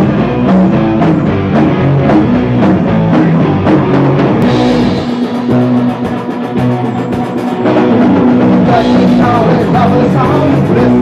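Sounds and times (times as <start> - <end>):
punk band playing loud rock: 0.0 - 11.0.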